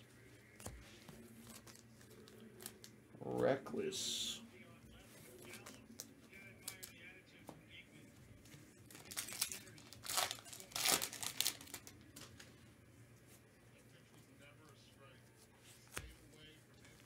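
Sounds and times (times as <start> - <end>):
wrapper crinkling and tearing: 1.4 - 2.9, 8.9 - 12.4.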